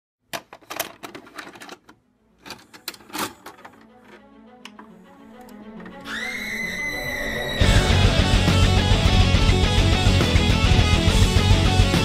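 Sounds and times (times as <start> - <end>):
clattering clicks and knocks: 0.3 - 4.9.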